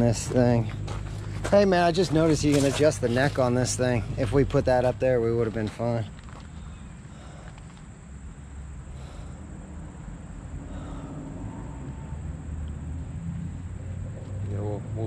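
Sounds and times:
vehicle engine idling: 0:00.0 - 0:15.0.

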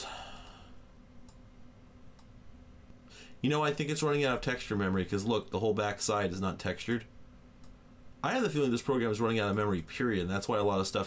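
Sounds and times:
low steady hum: 0:00.0 - 0:11.0
computer mouse click: 0:01.2 - 0:01.4, 0:02.1 - 0:02.4, 0:07.6 - 0:07.8.

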